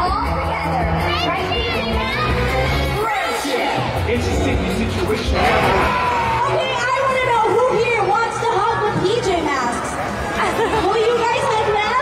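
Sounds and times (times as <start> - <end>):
crowd chatter in hall: 0.0 - 12.0.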